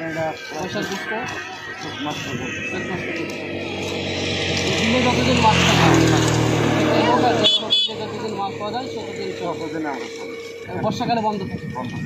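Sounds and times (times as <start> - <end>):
vehicle engine passing: 2.0 - 11.3
car horn beeps: 7.3 - 8.2.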